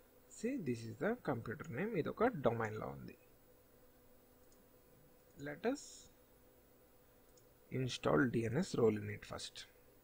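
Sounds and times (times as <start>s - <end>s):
steady hum: 0.0s - 10.0s
computer mouse clicks: 4.4s - 5.4s, 7.2s - 7.6s.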